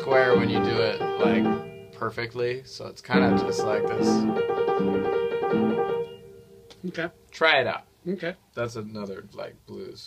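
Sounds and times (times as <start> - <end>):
blues piano playing: 0.0 - 2.3, 3.1 - 7.2.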